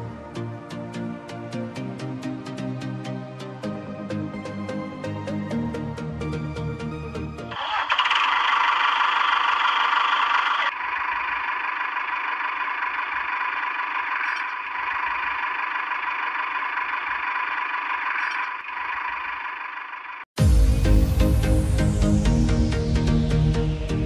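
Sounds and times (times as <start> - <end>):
toy electric motor whining: 7.5 - 20.3.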